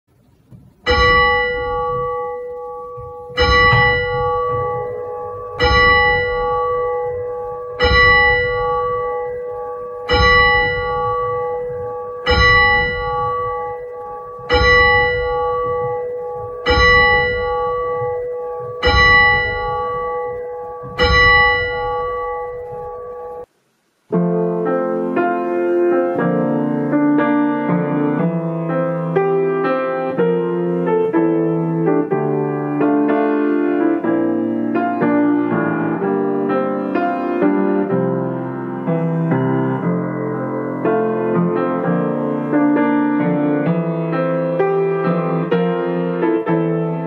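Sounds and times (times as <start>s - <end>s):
church bell tolling: 0.8s - 23.5s.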